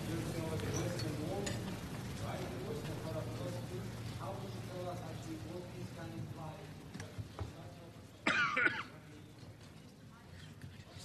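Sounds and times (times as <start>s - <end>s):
person coughing: 8.2s - 9.0s.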